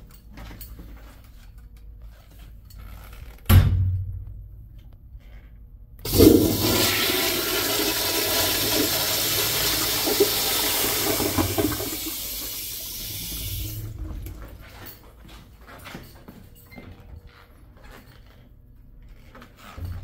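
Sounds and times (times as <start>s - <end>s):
toilet flushing: 6.0s - 14.4s.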